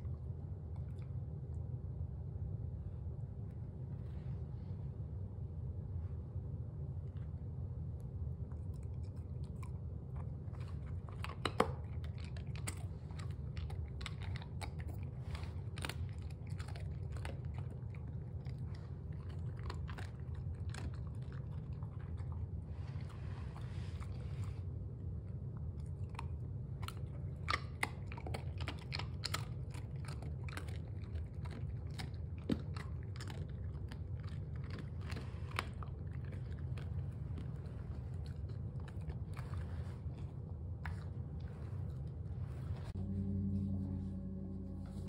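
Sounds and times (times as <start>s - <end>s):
low steady hum: 0.0s - 45.0s
dog chewing hard treat: 8.5s - 24.6s, 25.7s - 42.2s.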